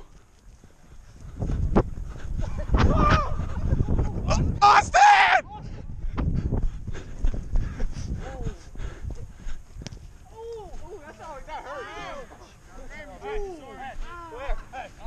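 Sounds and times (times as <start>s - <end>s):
microphone rumbling and thumps: 1.1s - 10.2s.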